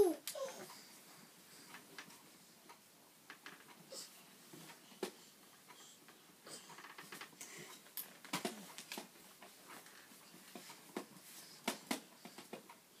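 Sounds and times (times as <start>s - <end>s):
baby grunts and breaths: 0.0s - 1.7s, 3.8s - 4.2s, 4.8s - 7.8s.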